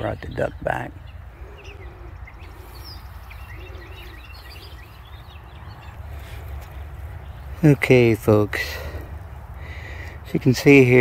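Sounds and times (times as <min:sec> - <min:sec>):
songbirds chirping: 0:00.0 - 0:11.0
steady low rumble: 0:00.0 - 0:11.0.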